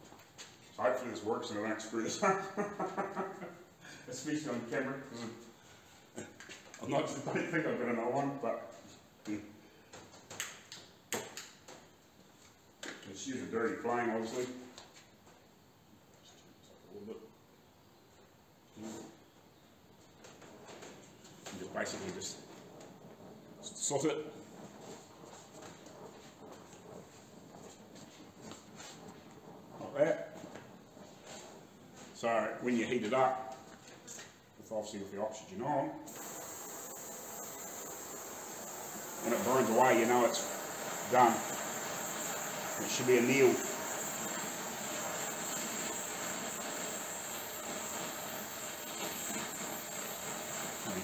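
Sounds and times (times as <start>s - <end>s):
torch flame hissing: 20.5s - 33.7s, 36.0s - 51.0s.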